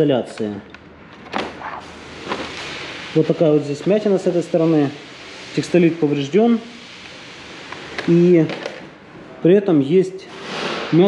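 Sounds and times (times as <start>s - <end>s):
sheet scraping and rustling: 1.4s - 8.5s.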